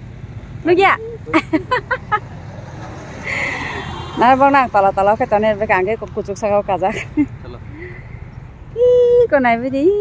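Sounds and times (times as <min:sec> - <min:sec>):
motor vehicle rumbling: 0:00.0 - 0:10.0.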